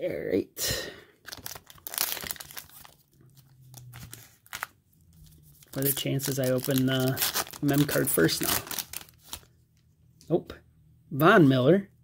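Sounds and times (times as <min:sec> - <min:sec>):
foil wrapper tearing and crinkling: 0:01.3 - 0:04.7, 0:05.5 - 0:09.5.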